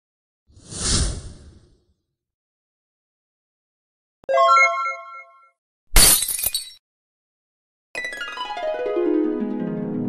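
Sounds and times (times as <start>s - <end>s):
music: 8.0s - 10.0s.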